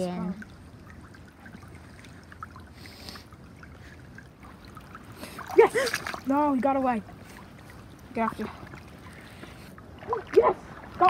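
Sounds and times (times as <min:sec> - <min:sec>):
creek running over stones: 0:00.0 - 0:11.0.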